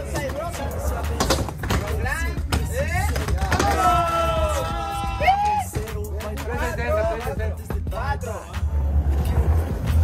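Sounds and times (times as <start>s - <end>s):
hip-hop music with vocals: 0.0s - 10.0s.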